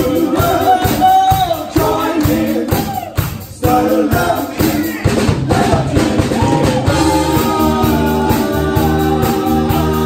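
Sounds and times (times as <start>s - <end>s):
live band playing: 0.0s - 10.0s
steady drum beat: 0.0s - 10.0s.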